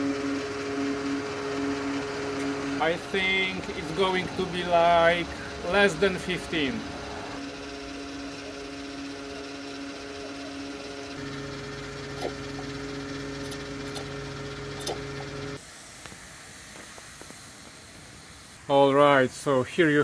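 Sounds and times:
fuel pump humming: 0:00.0 - 0:17.0.

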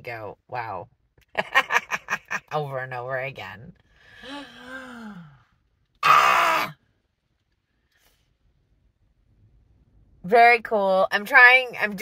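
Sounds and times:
woman breathy sigh: 0:04.1 - 0:05.5.

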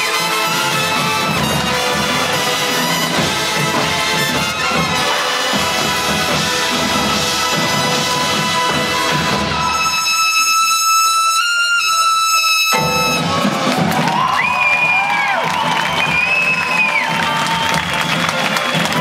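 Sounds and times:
crowd cheering and applause: 0:00.0 - 0:10.4, 0:11.0 - 0:19.0
shrill whistles: 0:09.4 - 0:13.3, 0:14.1 - 0:19.0.

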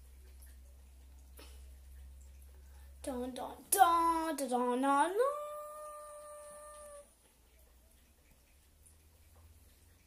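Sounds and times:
girl's voice holding a long note: 0:03.8 - 0:07.1.

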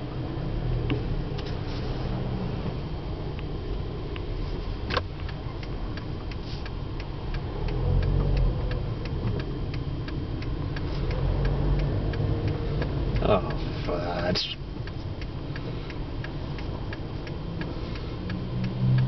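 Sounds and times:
car cabin hum: 0:00.0 - 0:19.0
turn signal ticking: 0:00.0 - 0:19.0.

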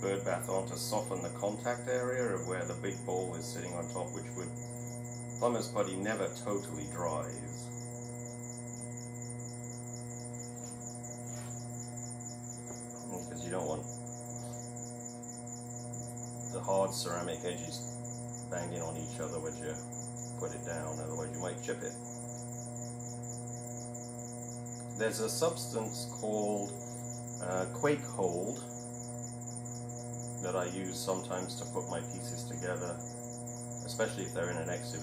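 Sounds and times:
fast pulsing hiss: 0:00.0 - 0:35.0
steady electrical hum: 0:00.0 - 0:35.0.

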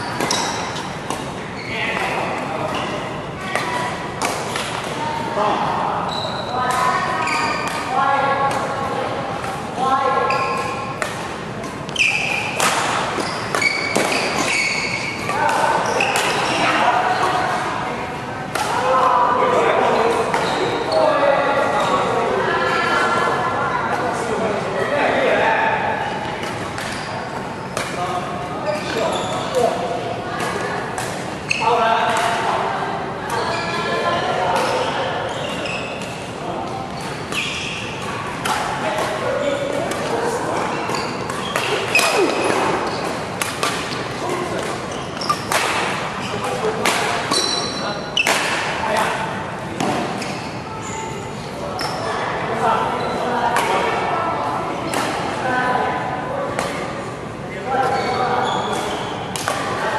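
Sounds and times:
shoes squeaking on court: 0:00.0 - 0:03.8, 0:06.0 - 0:08.0, 0:10.2 - 0:11.0, 0:11.7 - 0:17.5, 0:20.0 - 0:21.1, 0:26.4 - 0:28.0, 0:28.6 - 0:29.9, 0:30.5 - 0:31.8, 0:33.3 - 0:38.5, 0:39.9 - 0:48.5, 0:50.0 - 0:52.2, 0:53.0 - 0:53.3, 0:57.8 - 0:59.3
rackets striking shuttlecock: 0:10.6 - 0:14.5, 0:40.9 - 0:46.2, 0:58.7 - 0:59.8.

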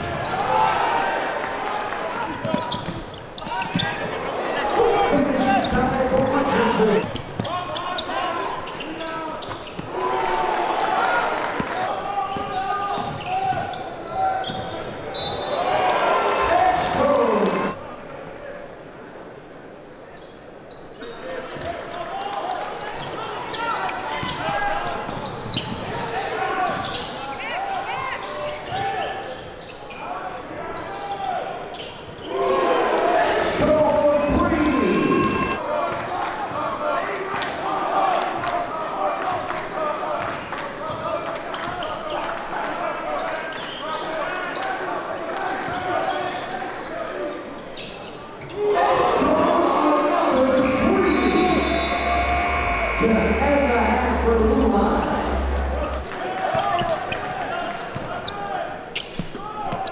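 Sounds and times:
indoor crowd chatter: 0:00.0 - 0:59.9.

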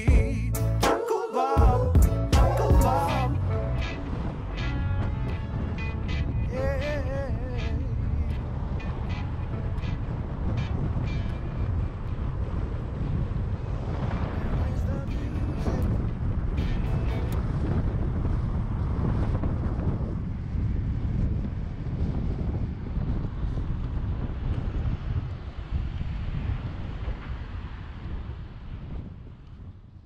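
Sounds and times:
vehicle and road noise: 0:01.6 - 0:30.0
wind buffeting microphone: 0:01.7 - 0:30.0.

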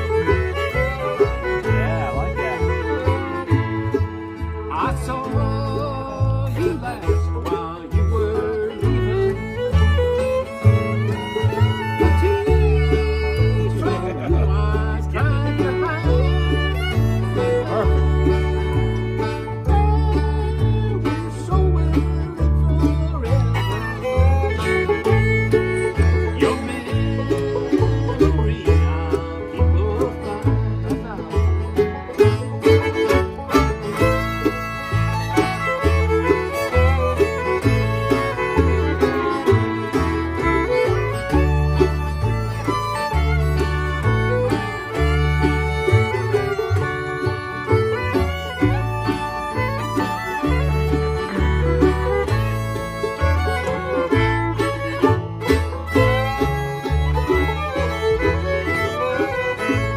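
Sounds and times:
fiddles playing melody: 0:00.0 - 0:59.9
strummed acoustic guitar: 0:00.0 - 0:59.9
upright bass: 0:00.0 - 0:59.9.

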